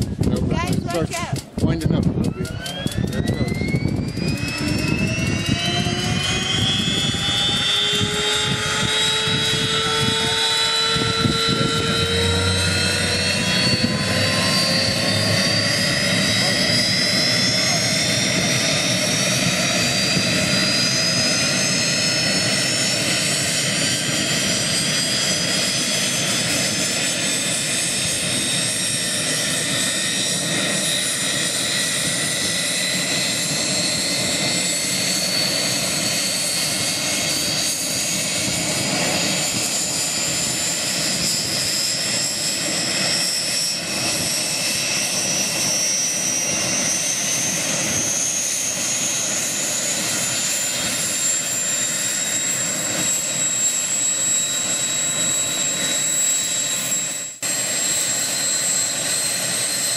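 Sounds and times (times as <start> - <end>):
jet engines spooling up: 0.0 - 59.9.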